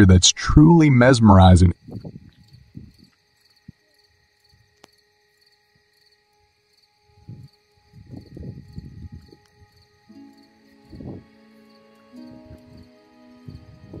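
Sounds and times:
cricket chirping: 0:00.0 - 0:14.0.

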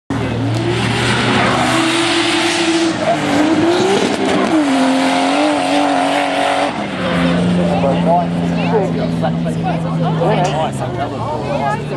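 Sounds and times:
car engine revving: 0:00.1 - 0:11.9.

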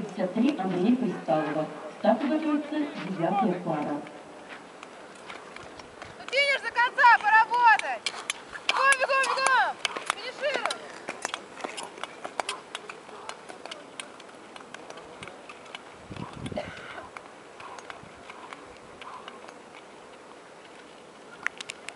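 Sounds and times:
outdoor background: 0:00.0 - 0:21.9
people shouting encouragement: 0:06.2 - 0:08.0, 0:08.7 - 0:10.8
sharp clicks: 0:07.2 - 0:19.9, 0:21.4 - 0:21.9.

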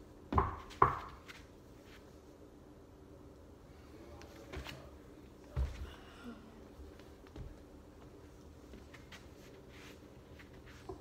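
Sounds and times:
feet thumping on padded beam: 0:00.3 - 0:01.5.

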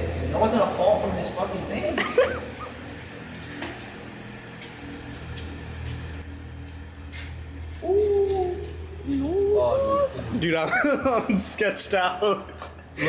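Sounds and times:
elevator machinery hum: 0:00.0 - 0:13.0.

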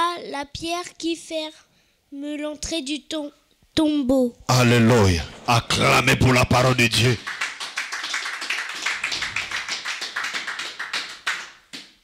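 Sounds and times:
congregation applauding: 0:05.7 - 0:12.0.

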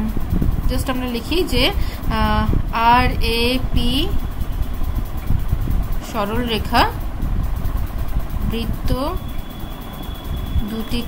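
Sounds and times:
low engine-like rumble: 0:00.0 - 0:11.0.

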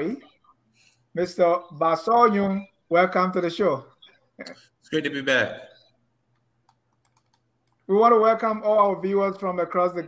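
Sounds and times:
man speaking: 0:01.1 - 0:06.0, 0:07.8 - 0:10.0.

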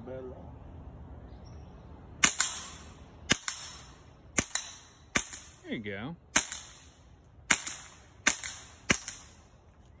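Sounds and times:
suppressed rifle shots: 0:06.4 - 0:09.4.

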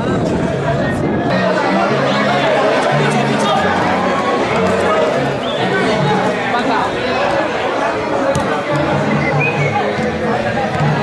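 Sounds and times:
chatter and shouting: 0:00.0 - 0:11.0.

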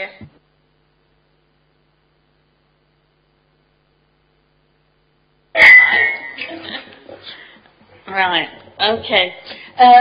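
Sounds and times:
microphone pop: 0:00.2 - 0:00.5.

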